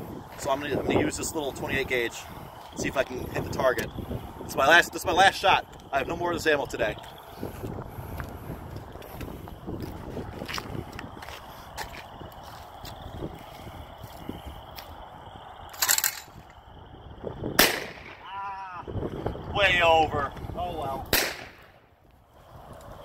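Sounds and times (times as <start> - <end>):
shotgun shot echoing: 17.6 - 18.3, 21.1 - 21.7.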